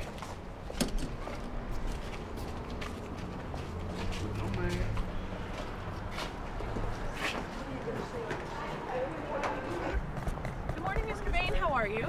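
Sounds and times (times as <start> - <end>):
hard-soled footsteps on pavement: 0.0 - 12.0
indistinct voices: 7.4 - 10.1.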